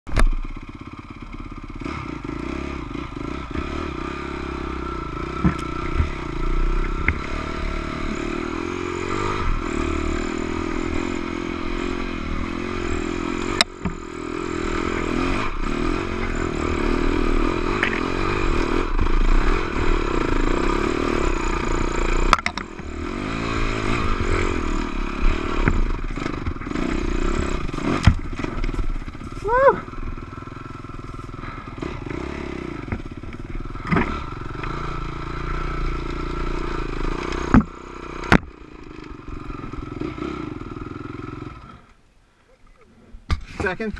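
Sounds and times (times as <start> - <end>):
dirt bike engine revving: 0.4 - 41.9.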